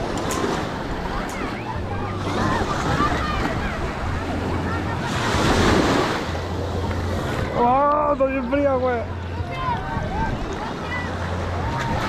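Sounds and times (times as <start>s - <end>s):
small waves washing on sand: 0.0s - 12.0s.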